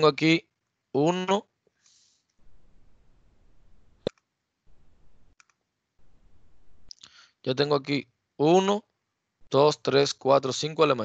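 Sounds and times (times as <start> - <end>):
microphone hiss: 0.0 - 11.0
computer mouse clicks: 5.3 - 5.6.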